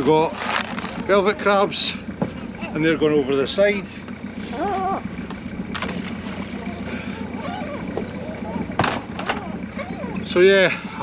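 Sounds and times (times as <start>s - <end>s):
boat engine idling: 0.0s - 11.0s.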